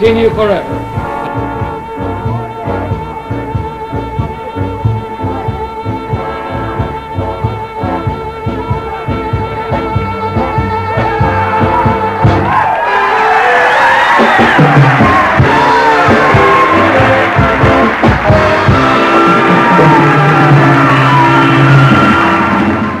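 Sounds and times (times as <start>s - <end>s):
big band dance music: 0.0s - 23.0s.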